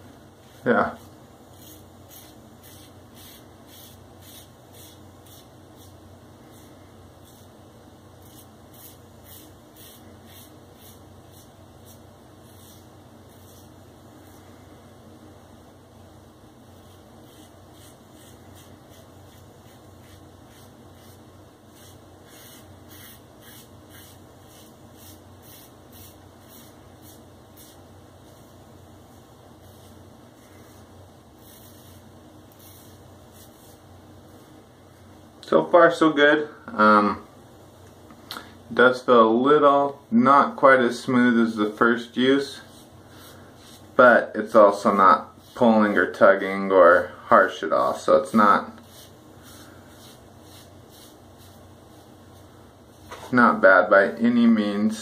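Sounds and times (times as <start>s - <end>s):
razor scraping stubble: 0.4s - 7.5s, 8.2s - 14.4s, 16.8s - 27.8s, 48.8s - 52.1s.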